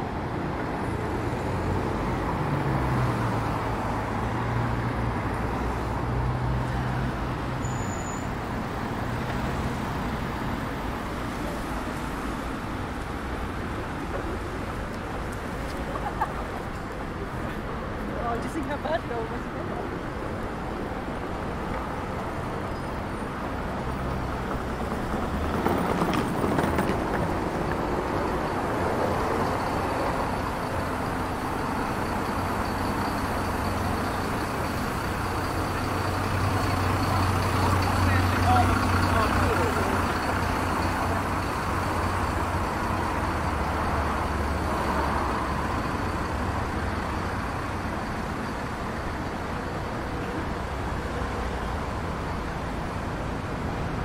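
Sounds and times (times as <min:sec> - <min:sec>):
road traffic engine rumble: 0:00.0 - 0:54.0.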